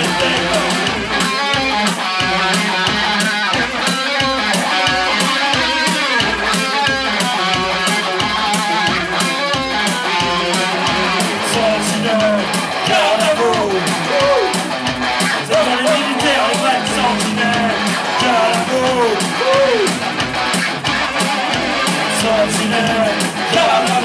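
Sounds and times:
fast drum machine beat: 0.0 - 24.0
harsh electric guitar strumming: 0.0 - 24.0
synthesizer: 0.0 - 24.0.

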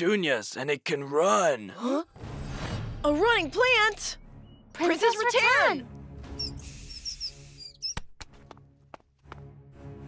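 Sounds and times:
high squeaky chirps: 6.3 - 8.2.

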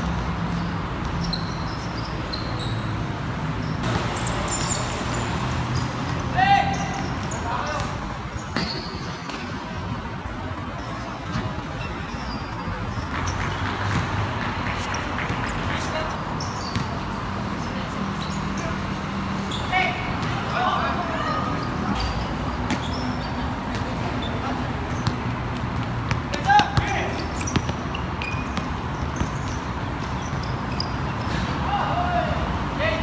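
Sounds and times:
players calling out: 3.6 - 9.7, 10.6 - 33.0
basketball bouncing on concrete: 13.0 - 15.6, 16.6 - 17.1, 24.8 - 30.6.

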